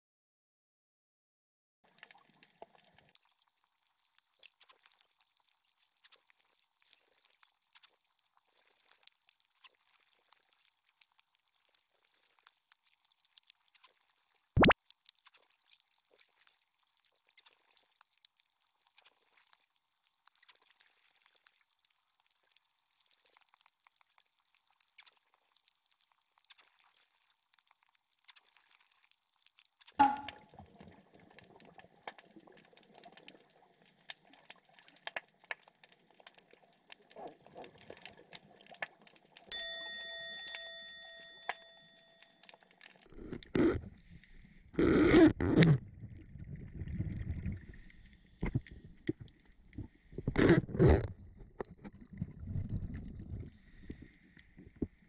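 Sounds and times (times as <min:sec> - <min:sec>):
underwater crackle of clicks: 0:01.9 - 0:39.5, 0:40.2 - 0:55.0
sharp knock: 0:30.0 - 0:30.4
ringing chime: 0:39.5 - 0:42.4.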